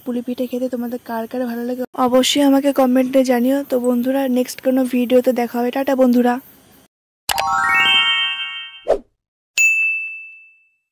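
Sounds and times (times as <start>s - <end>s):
chime of stacked tones: 7.3s - 8.9s, 9.6s - 10.8s
notification bell ding: 7.3s - 8.9s, 9.6s - 10.9s.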